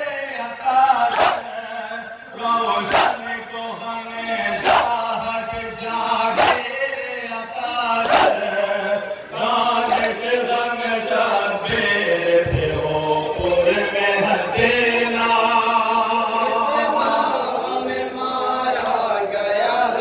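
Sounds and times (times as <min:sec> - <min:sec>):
men chanting a lament: 0:00.0 - 0:20.0.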